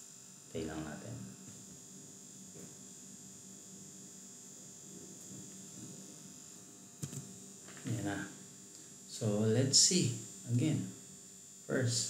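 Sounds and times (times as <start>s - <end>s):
low electrical hum: 0.0s - 12.0s
thin high whine and hiss: 0.0s - 12.0s.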